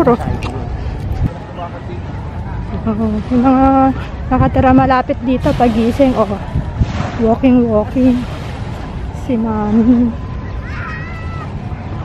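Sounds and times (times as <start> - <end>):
wind rumble: 0.0 - 12.0
small waves at shoreline: 5.3 - 12.0.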